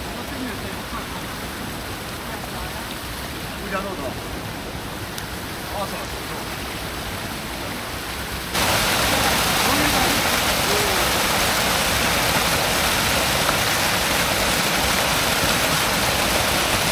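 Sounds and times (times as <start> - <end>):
running water rushing: 0.0 - 16.9.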